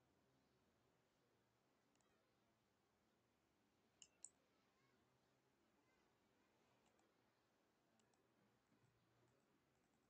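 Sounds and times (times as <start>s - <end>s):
faint computer mouse clicks: 4.0s - 4.4s, 6.8s - 7.1s, 8.0s - 8.2s.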